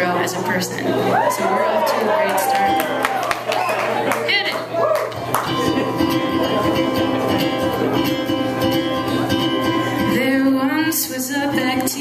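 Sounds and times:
ukulele strumming: 5.1 - 12.0
woman singing: 9.6 - 12.0.

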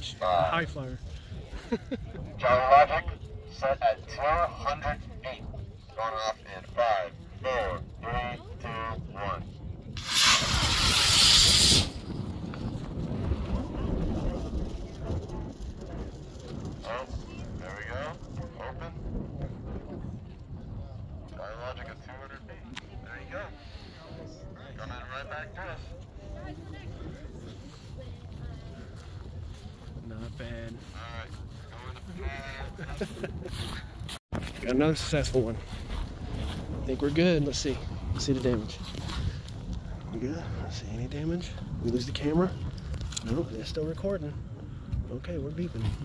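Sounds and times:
wind rumbling on microphone: 0.0 - 46.0
man laughing: 1.6 - 2.3, 32.4 - 33.8
rocket motor hissing: 10.0 - 12.0.

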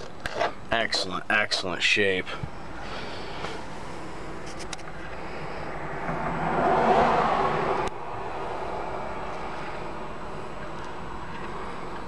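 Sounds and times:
vehicle engine rumbling: 0.0 - 12.0
rushing noise: 5.3 - 10.5.

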